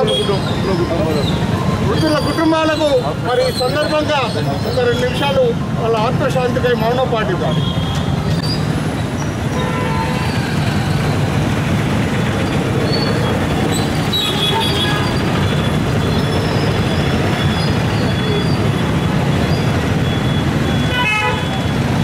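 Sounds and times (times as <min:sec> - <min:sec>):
street traffic: 0:00.0 - 0:22.0.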